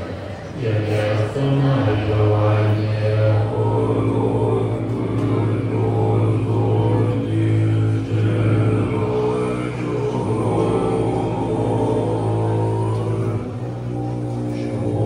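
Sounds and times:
monks chanting in low drone: 0:00.0 - 0:15.0.

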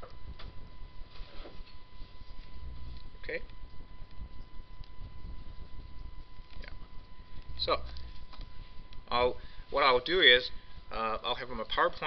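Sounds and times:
room noise: 0:00.0 - 0:12.0
thin steady whine: 0:00.0 - 0:12.0.

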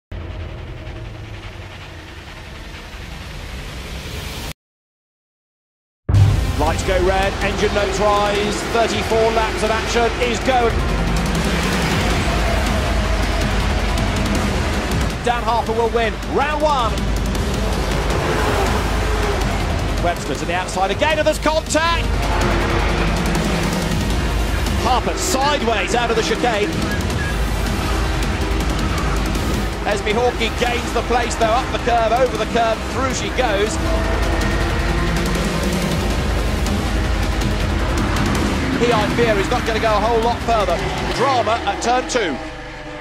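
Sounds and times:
race car engines running hard: 0:06.4 - 0:43.0
road and wind noise: 0:06.4 - 0:43.0.

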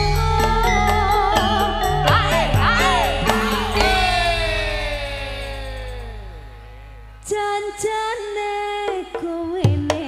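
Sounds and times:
band notes sliding down in pitch: 0:01.6 - 0:08.0.

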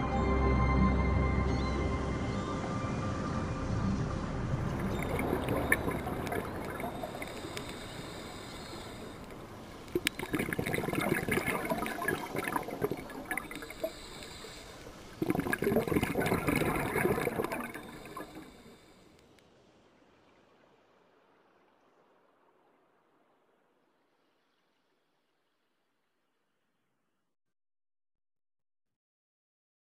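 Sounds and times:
underwater rushing and gurgling: 0:02.7 - 0:25.6.

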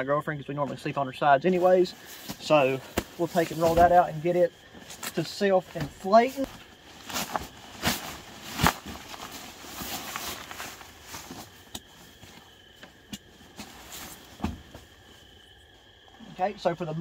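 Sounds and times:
insect trill: 0:00.0 - 0:17.0
nylon sack rustling and crinkling: 0:01.4 - 0:15.3.

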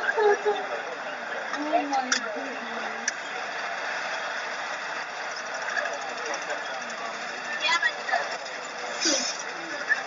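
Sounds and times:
minibus engine and road noise: 0:00.0 - 0:10.0.

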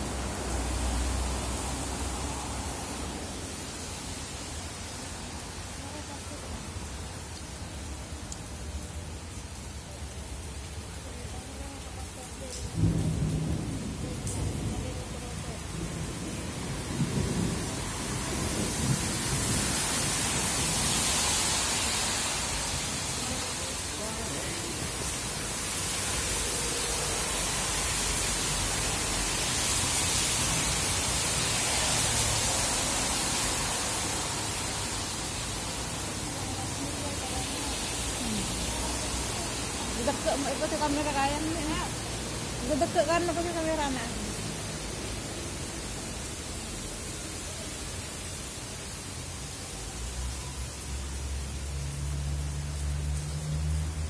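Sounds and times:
rain falling: 0:00.0 - 0:54.0.

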